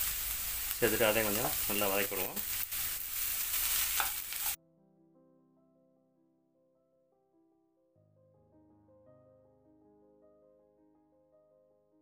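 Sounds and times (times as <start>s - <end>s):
vegetables sizzling in oil: 0.0s - 4.6s
soft piano music: 4.6s - 12.0s.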